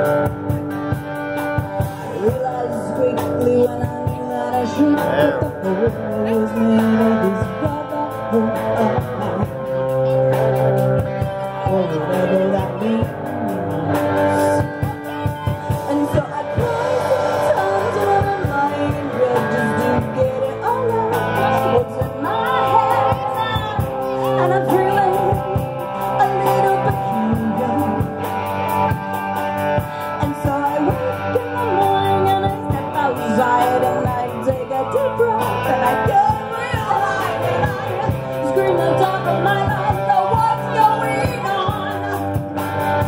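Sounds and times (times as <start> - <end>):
bass guitar: 0.0 - 43.0
electric guitar: 0.0 - 43.0
live rock band over speakers: 0.0 - 43.0
steady drum beat: 0.0 - 43.0
woman singing: 1.9 - 28.4, 29.8 - 42.6.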